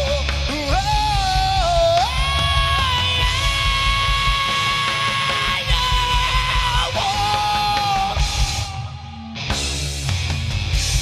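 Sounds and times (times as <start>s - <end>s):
hard rock band playing live: 0.0s - 11.0s.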